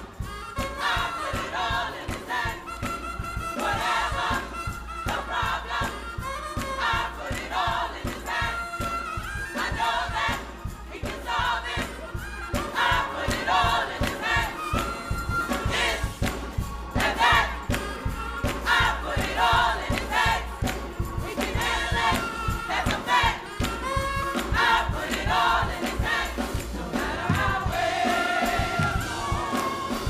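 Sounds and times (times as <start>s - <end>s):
gospel choir singing: 0.0s - 30.0s.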